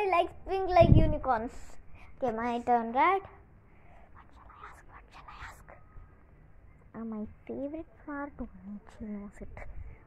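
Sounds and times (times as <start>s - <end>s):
girl whispering: 4.1s - 5.9s.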